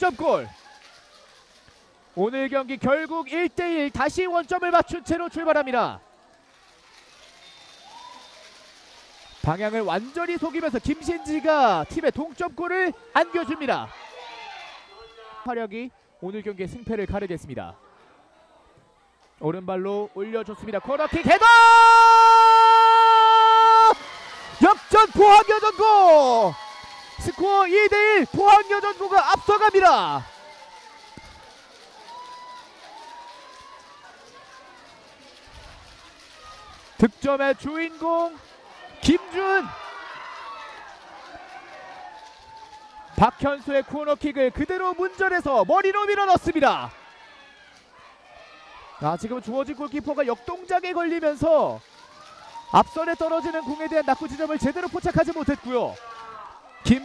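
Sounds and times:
players shouting: 9.4s - 15.5s, 20.2s - 34.9s, 36.0s - 57.0s.

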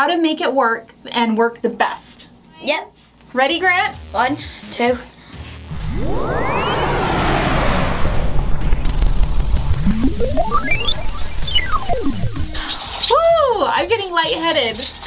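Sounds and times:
high gliding tone: 5.7s - 12.7s
rising tone: 5.7s - 12.7s.

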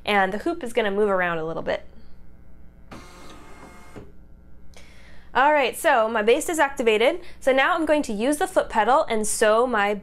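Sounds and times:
embroidery machine motors whirring: 2.8s - 4.3s.

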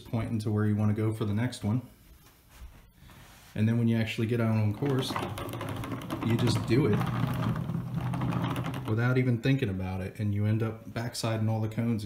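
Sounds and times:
toy car rattling on wooden table: 4.8s - 9.2s.

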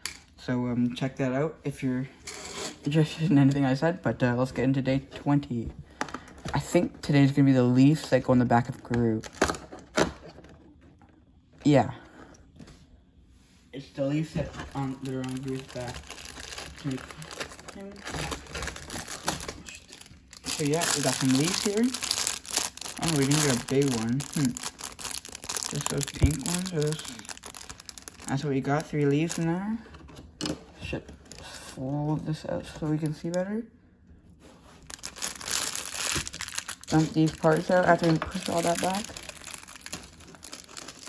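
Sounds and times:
plastic bag crinkling: 14.5s - 29.7s, 34.8s - 41.0s.

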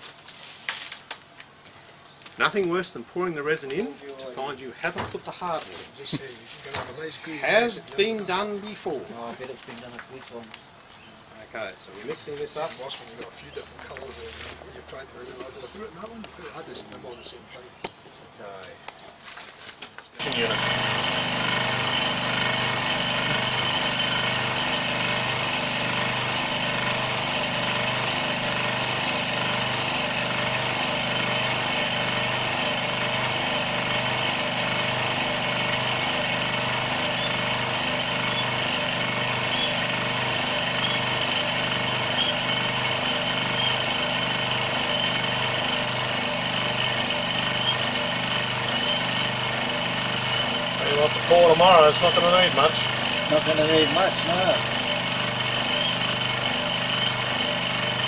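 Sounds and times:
vibrating base buzzing: 20.2s - 58.0s.

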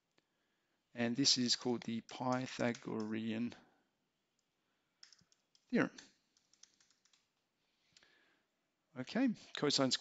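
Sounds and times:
computer keyboard key clicks: 5.0s - 7.2s.

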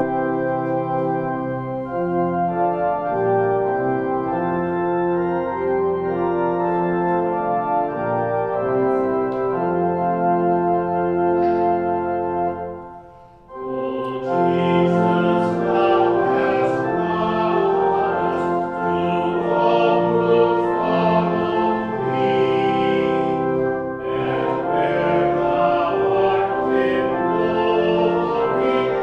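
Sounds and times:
church organ playing hymn chords: 0.0s - 29.0s.

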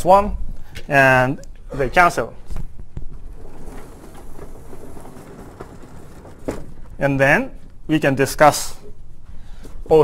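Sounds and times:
low rumble of room noise: 0.0s - 10.0s.

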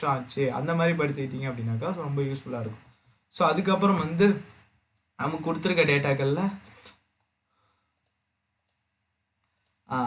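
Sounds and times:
computer mouse clicks: 6.8s - 9.9s.

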